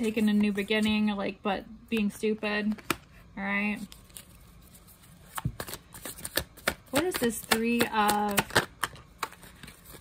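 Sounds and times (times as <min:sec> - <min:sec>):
cards being shuffled by hand: 0:03.8 - 0:10.0.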